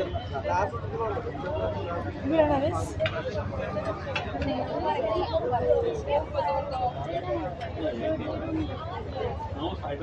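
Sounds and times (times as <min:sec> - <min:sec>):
crowd background: 0:00.0 - 0:10.0
people talking nearby: 0:00.0 - 0:10.0.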